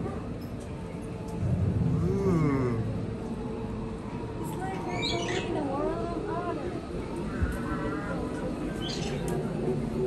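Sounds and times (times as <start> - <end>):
low background rumble: 0.9 - 4.5.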